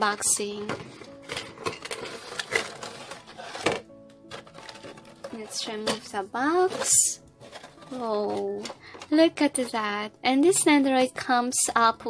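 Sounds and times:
packaging clicks taps and scrapes: 0:00.3 - 0:09.8.

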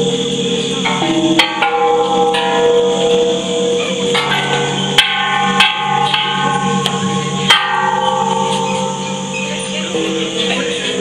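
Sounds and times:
bronze temple bells ringing: 0:00.0 - 0:11.0.

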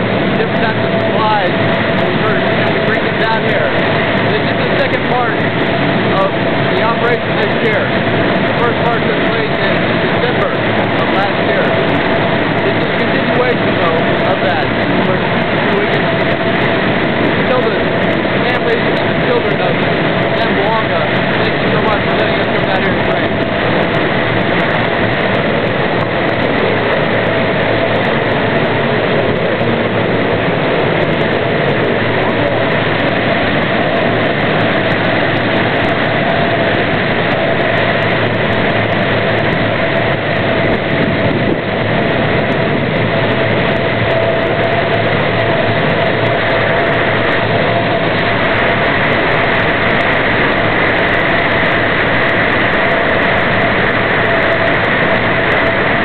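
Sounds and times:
constant high whine: 0:00.0 - 0:56.0
heavy engine running: 0:00.0 - 0:56.0.

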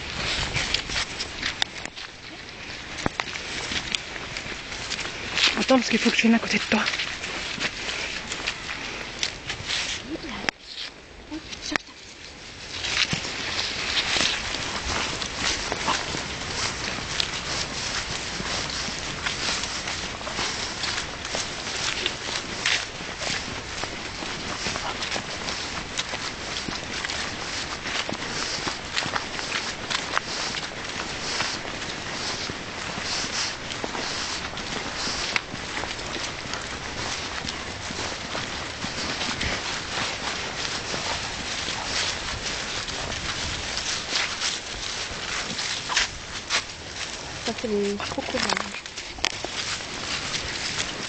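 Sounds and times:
footsteps through grass and leaves: 0:00.0 - 0:51.0.

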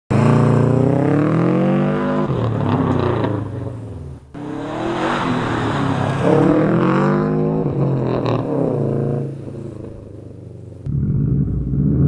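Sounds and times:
car engine running hard: 0:00.1 - 0:12.0
road noise: 0:00.1 - 0:12.0.

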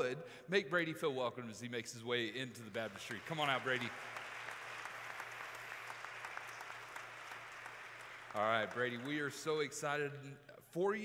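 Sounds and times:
crowd applauding: 0:02.7 - 0:09.7.

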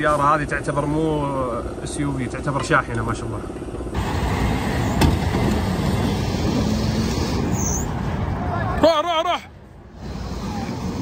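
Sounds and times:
car engine running hard: 0:03.2 - 0:08.6.

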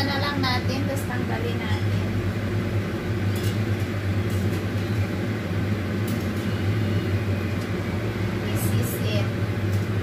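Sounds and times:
oven fan humming: 0:00.0 - 0:10.0.

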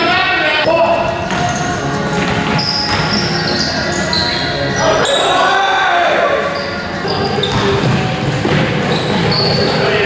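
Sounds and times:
sneakers squeaking: 0:00.9 - 0:05.6, 0:06.3 - 0:10.0
basketball bouncing: 0:07.4 - 0:09.3.

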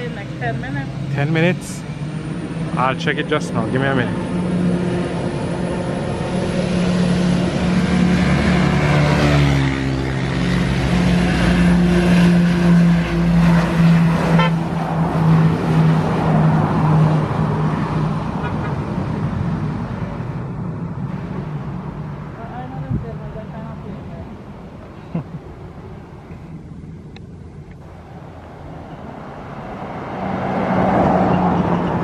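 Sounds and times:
turboprop aircraft propeller drone: 0:00.0 - 0:21.0.

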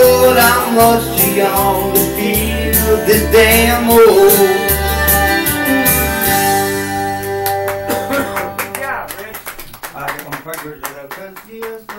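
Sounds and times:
karaoke backing music: 0:00.0 - 0:11.9
people clapping: 0:07.2 - 0:11.9.

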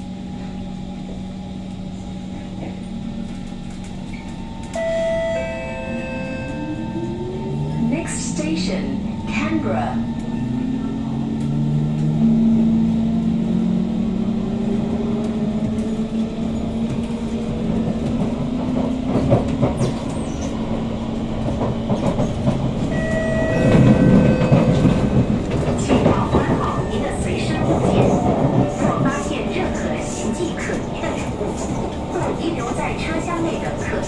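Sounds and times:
train rumble: 0:00.0 - 0:34.0
train traction motors whining: 0:01.6 - 0:34.0.

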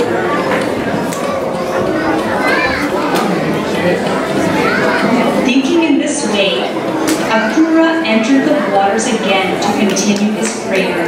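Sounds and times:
audience chatter in a hall: 0:00.0 - 0:11.0.

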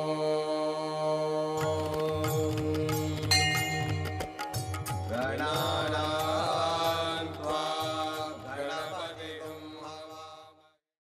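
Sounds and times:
person chanting: 0:00.0 - 0:04.2, 0:05.0 - 0:10.8
instrumental music: 0:01.6 - 0:09.1.

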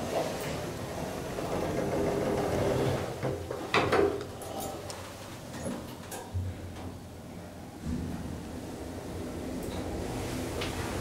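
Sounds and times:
elevator car travelling hum: 0:00.0 - 0:04.5.

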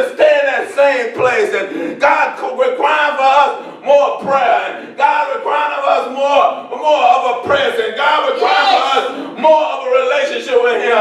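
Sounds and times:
preacher shouting into microphone: 0:08.2 - 0:09.5.

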